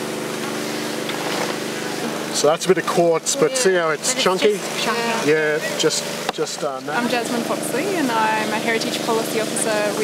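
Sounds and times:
motor droning: 0:00.0 - 0:10.0.

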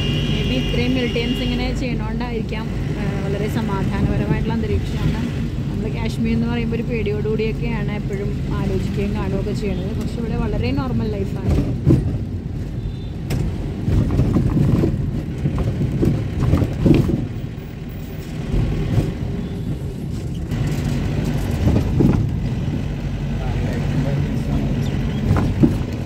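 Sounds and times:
car interior road noise: 0:00.0 - 0:26.0.

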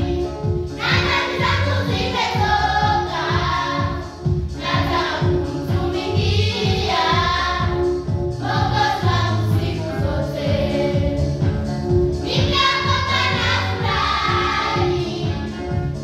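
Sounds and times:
children's choir singing: 0:00.8 - 0:11.3, 0:12.2 - 0:15.8.

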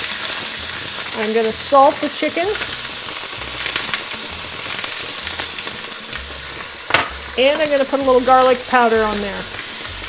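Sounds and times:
oil popping: 0:00.0 - 0:08.7
chicken sizzling in frying pan: 0:00.0 - 0:10.0.

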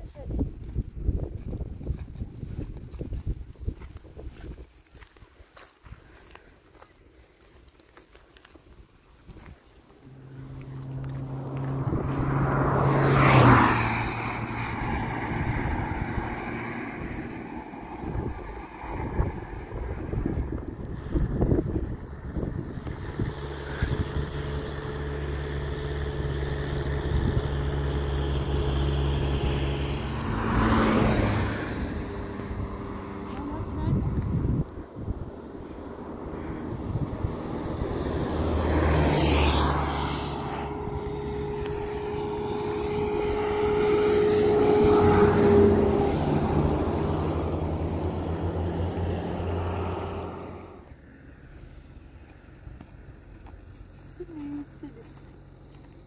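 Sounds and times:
wind on microphone: 0:00.0 - 0:05.0, 0:11.0 - 0:25.1, 0:26.0 - 0:50.5
vehicles passing: 0:06.0 - 0:56.0.

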